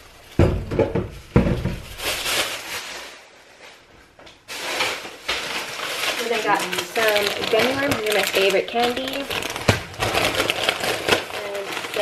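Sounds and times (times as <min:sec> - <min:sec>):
plastic bag rustling: 0:00.0 - 0:12.0
person speaking: 0:06.2 - 0:09.4.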